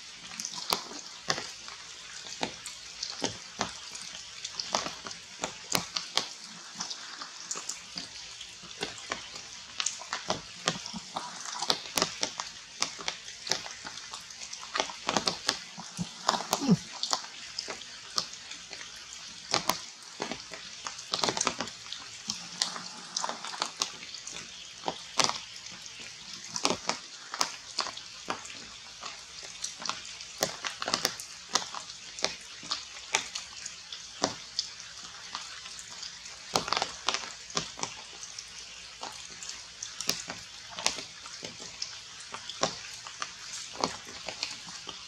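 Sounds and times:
rain hissing on leaves: 0.0 - 45.0
sharp ticks of drips: 0.0 - 45.0.

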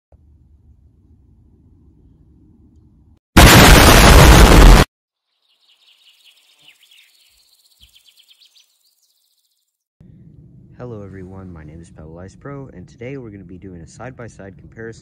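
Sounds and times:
explosion-like burst of noise: 3.4 - 4.9
faint high bird chirps: 5.2 - 9.8.

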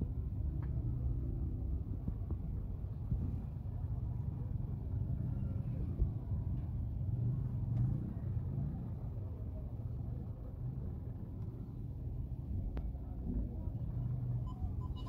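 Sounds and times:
engines and street traffic rumble: 0.0 - 15.0
faint crowd voices: 0.0 - 15.0.

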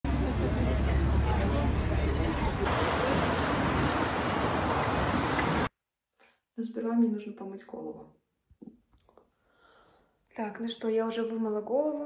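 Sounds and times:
indistinct voices talking: 0.0 - 5.7
road traffic rumble: 0.0 - 5.7.

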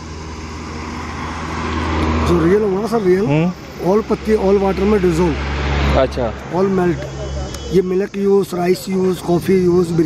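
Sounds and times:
vehicle engine and tyre noise: 0.0 - 10.0.

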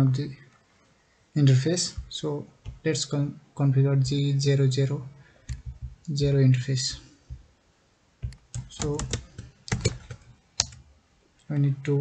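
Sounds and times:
keyboard keystrokes: 5.5 - 6.1, 8.2 - 10.8.

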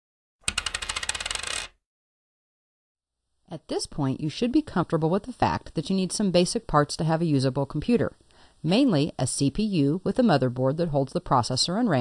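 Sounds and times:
coins clinking: 0.4 - 1.7.

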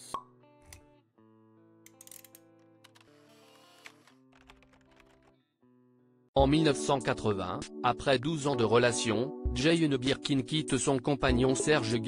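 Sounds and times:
soft background music: 6.4 - 12.0.

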